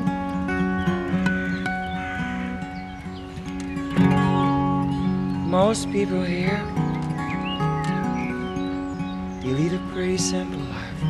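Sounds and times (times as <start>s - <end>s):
acoustic guitar playing: 0.0s - 11.0s
birds chirping: 0.0s - 11.0s.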